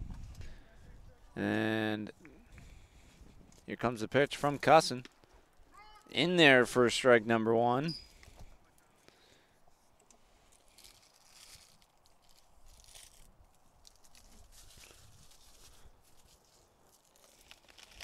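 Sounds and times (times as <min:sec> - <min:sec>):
soft rustles: 0:09.7 - 0:18.0.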